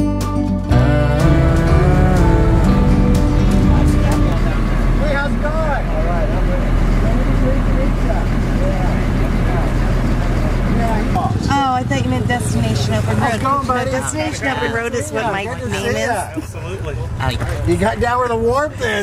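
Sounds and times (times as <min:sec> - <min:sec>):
vehicle engine running slowly: 0:01.2 - 0:19.0
people talking: 0:03.4 - 0:19.0.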